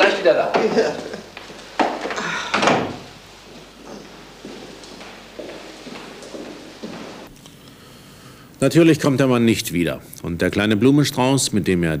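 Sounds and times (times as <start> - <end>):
door closing: 1.8 - 3.2.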